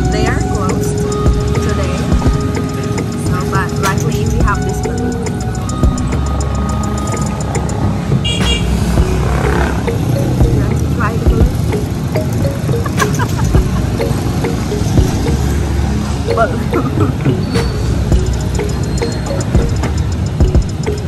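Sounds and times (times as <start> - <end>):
background music: 0.0 - 21.0
motorcycles passing: 0.0 - 21.0.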